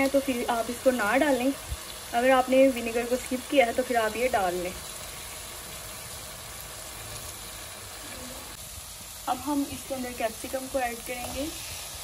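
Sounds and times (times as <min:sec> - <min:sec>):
chicken sizzling in a pan: 0:00.0 - 0:12.0.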